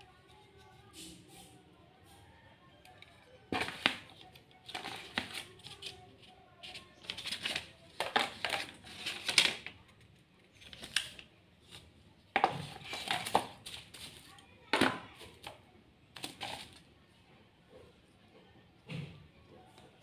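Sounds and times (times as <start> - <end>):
plastic wrap and paper rustling: 3.5 - 9.8, 10.5 - 14.4, 16.1 - 16.9.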